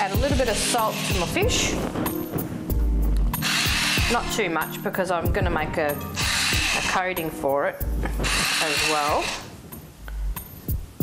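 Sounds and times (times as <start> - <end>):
background music: 0.0 - 11.0
salt grinder grinding: 6.2 - 7.0, 8.2 - 9.5.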